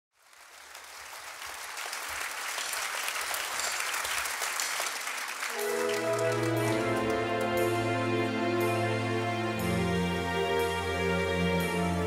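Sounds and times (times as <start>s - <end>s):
audience applauding: 0.1s - 7.8s
band with strings holding chord: 5.5s - 12.0s.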